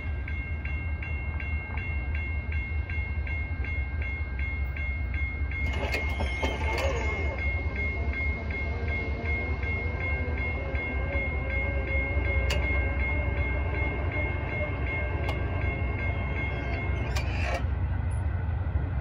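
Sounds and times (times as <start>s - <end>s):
crossing warning bell ringing: 0.0s - 18.9s
distant freight train rumble: 0.0s - 19.0s.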